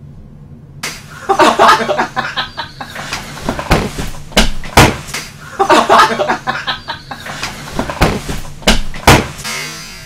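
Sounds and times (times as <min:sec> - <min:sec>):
women laughing loudly: 0:01.2 - 0:03.2, 0:05.4 - 0:07.5.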